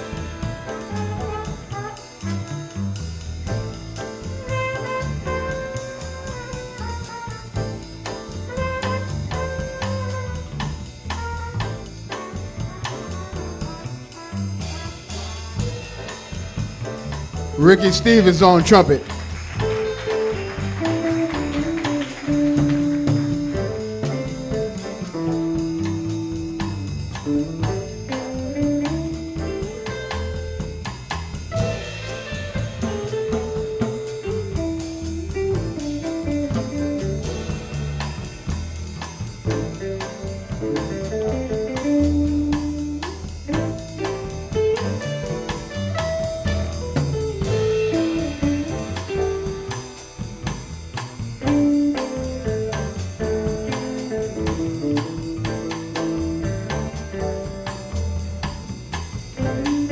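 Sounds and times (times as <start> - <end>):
drum kit with cymbal ticks: 0.0 - 59.9
upright bass: 0.0 - 59.9
electric guitar lead line: 17.6 - 30.8, 39.5 - 58.8, 59.4 - 59.9.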